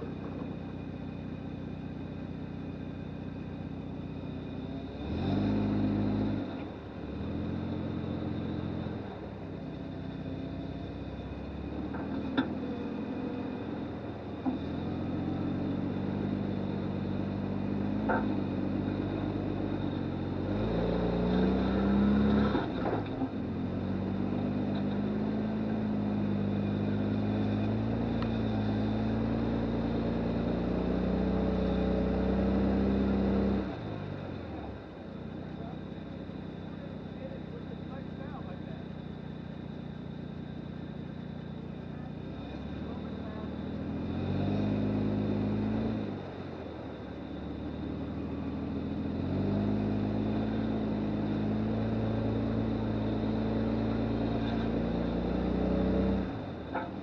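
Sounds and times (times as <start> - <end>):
engine pulling at low revs: 0.0 - 57.0.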